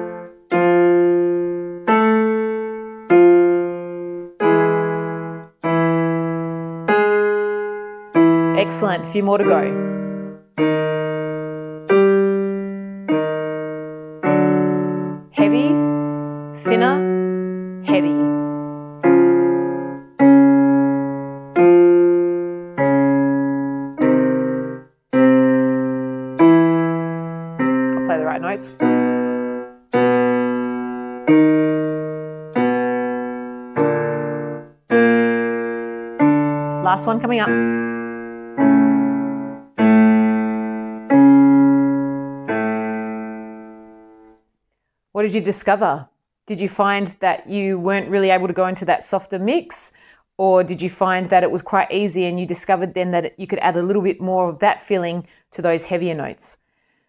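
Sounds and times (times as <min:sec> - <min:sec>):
keyboard piano chords: 0:00.0 - 0:44.5.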